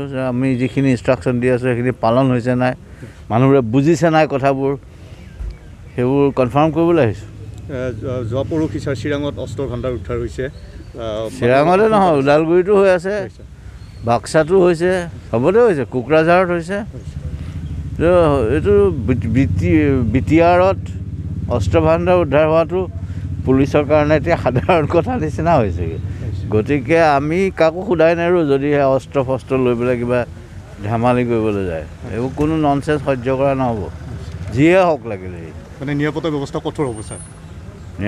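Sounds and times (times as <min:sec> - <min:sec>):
man talking: 0:00.0 - 0:04.8, 0:06.0 - 0:17.4, 0:18.0 - 0:37.2
vehicle engine idling: 0:04.3 - 0:38.0.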